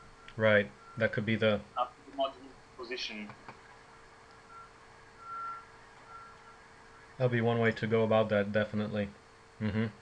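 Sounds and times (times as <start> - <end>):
low steady hum: 0.0 - 10.0
short electronic beeps: 4.5 - 6.6.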